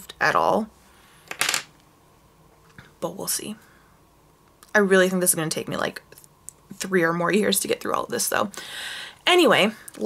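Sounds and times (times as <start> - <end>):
pencil clattering on tabletop: 1.3 - 1.7.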